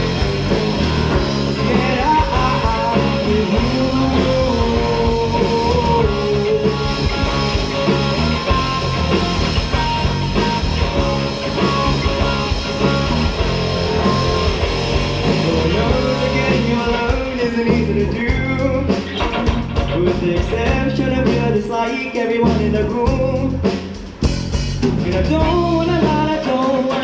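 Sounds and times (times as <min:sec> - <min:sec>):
electric guitar melody: 0:00.0 - 0:24.2
live rock band playing: 0:00.0 - 0:27.0.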